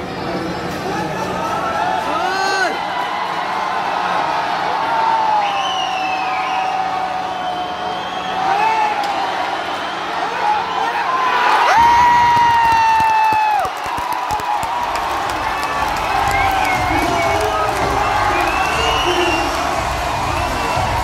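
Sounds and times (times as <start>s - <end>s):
stadium crowd cheering: 0.0s - 21.0s
shrill shouts and whistles: 5.4s - 11.1s, 16.0s - 21.0s.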